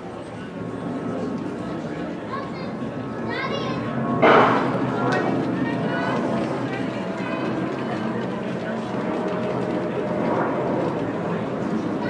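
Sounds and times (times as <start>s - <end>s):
spectator chatter: 0.0s - 12.0s.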